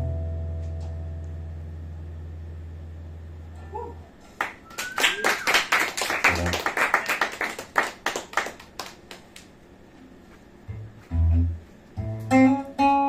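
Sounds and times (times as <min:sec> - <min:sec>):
audience applauding: 0:04.4 - 0:09.5.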